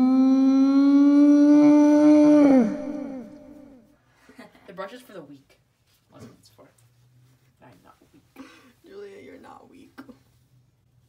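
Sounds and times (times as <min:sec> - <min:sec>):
woman holding long wailing note: 0:00.0 - 0:03.8.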